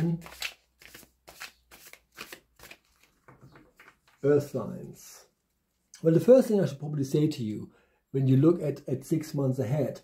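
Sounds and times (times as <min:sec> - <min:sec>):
cards shuffled by hand: 0:00.0 - 0:04.2.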